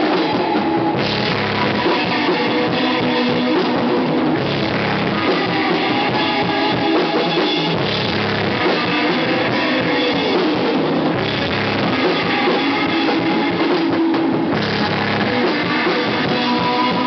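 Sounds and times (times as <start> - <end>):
drums: 0.0 - 17.0
electric guitar: 0.0 - 17.0.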